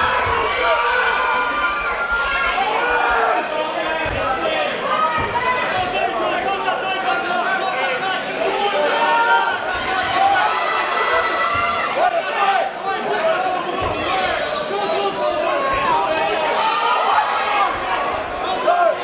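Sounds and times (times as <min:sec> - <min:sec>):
crowd talking and calling out: 0:00.0 - 0:19.0.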